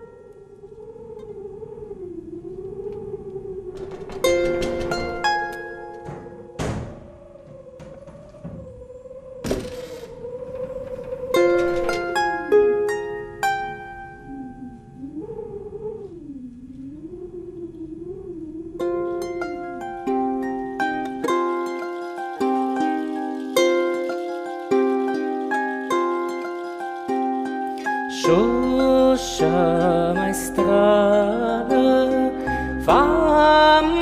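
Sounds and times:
wavering held musical tone: 0.0s - 9.4s, 10.0s - 16.0s, 16.9s - 34.0s.

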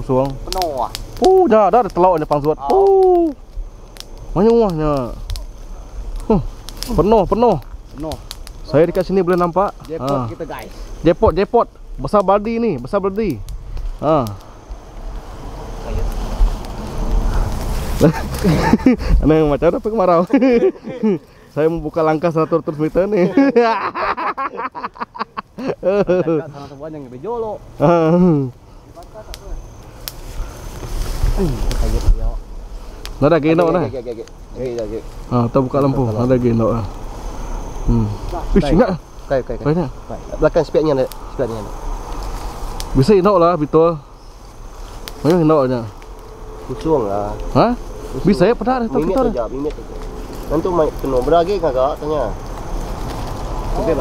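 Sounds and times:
high insect chorus: 0.0s - 54.0s
people calling out and exclaiming: 0.4s - 3.5s
man laughing: 18.0s - 19.3s, 20.2s - 21.3s, 22.4s - 26.6s
man talking: 19.0s - 23.6s, 46.7s - 49.9s.

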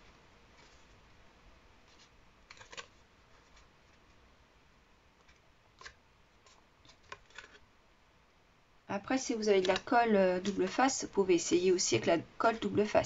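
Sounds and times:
cardstock rustling and clicking: 1.9s - 4.2s, 5.2s - 7.6s.

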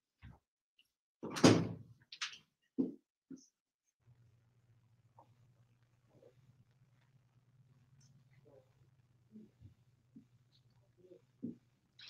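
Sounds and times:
door clattering shut: 1.2s - 1.8s.

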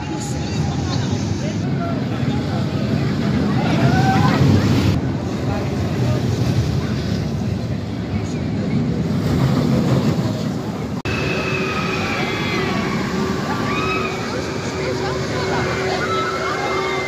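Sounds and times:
roller coaster rumbling on track: 0.0s - 17.0s.

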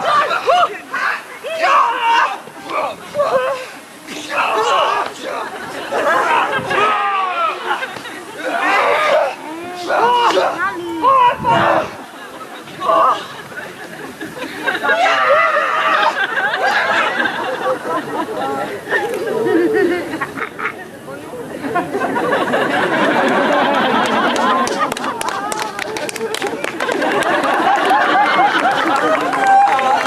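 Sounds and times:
people calling out high sliding cries: 0.0s - 21.0s, 27.7s - 30.0s
outdoor chatter: 0.0s - 30.0s.

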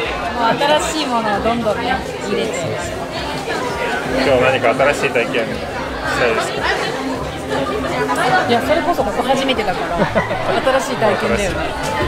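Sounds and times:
background chatter: 0.0s - 12.0s
people talking: 0.0s - 12.0s.

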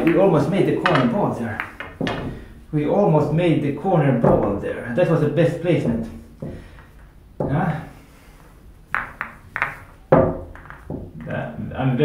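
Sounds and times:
pool balls clacking: 0.0s - 11.4s.

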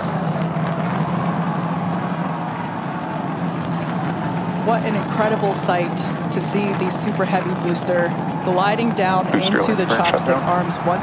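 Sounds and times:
rocket engines rumbling: 3.3s - 11.0s.

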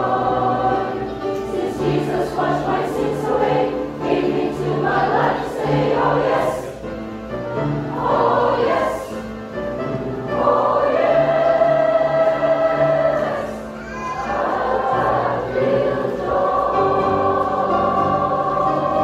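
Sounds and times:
mixed choir singing gospel: 0.0s - 19.0s.

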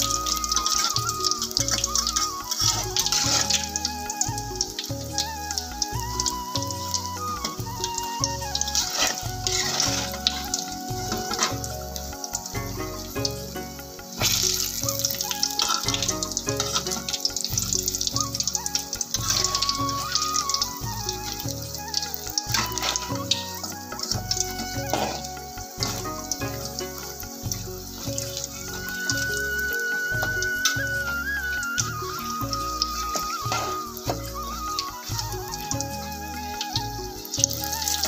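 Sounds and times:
background music with beat: 0.0s - 38.0s
fritters deep-frying in oil: 0.0s - 38.0s.

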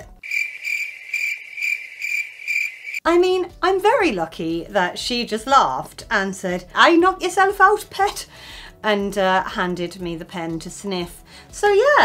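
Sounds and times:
cricket chirp sound effect: 0.2s - 3.0s.

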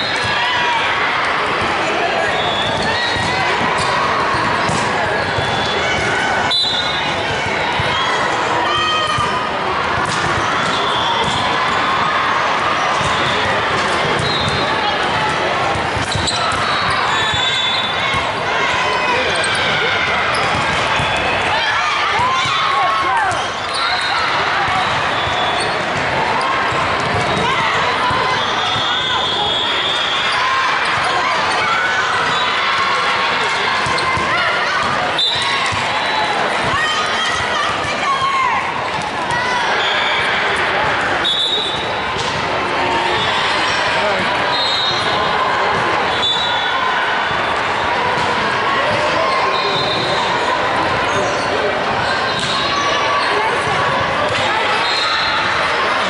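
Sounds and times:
sneaker squeaks on hardwood: 14.2s - 14.7s, 16.0s - 18.0s.

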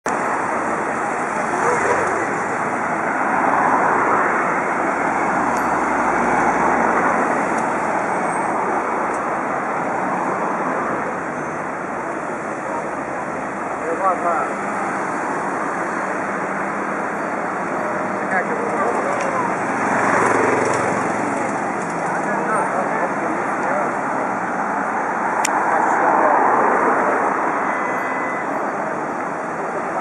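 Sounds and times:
road traffic: 0.0s - 30.0s
cars passing close by: 0.1s - 30.0s.

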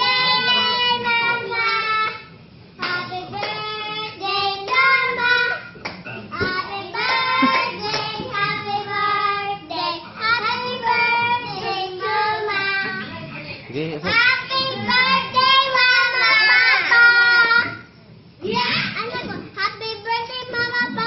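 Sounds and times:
girls singing together: 0.0s - 13.2s.

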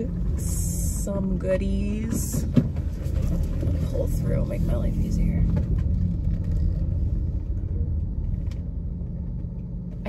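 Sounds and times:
car engine rumble: 0.0s - 10.0s
road noise inside car: 0.0s - 10.0s.

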